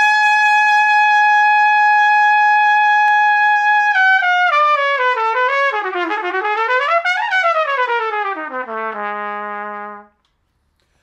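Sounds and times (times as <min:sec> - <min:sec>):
trumpet holding long high note: 0:00.0 - 0:10.1.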